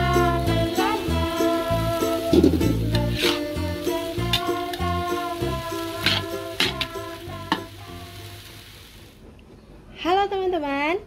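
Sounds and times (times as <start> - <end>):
background music with a beat: 0.0 - 8.0
vegetables sizzling in a wok: 0.0 - 9.3.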